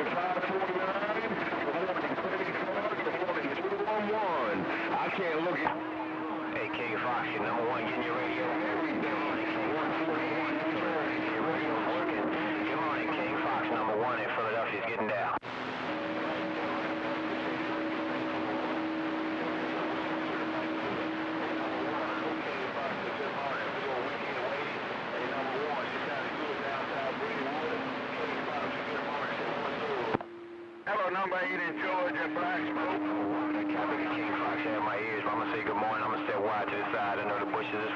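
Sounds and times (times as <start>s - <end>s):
weak voices over radio: 0.0s - 30.2s, 30.9s - 37.9s
radio static: 0.0s - 37.9s.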